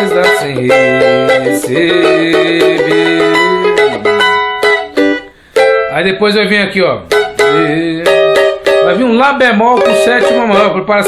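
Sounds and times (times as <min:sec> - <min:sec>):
cavaquinho strumming chords: 0:00.0 - 0:11.0.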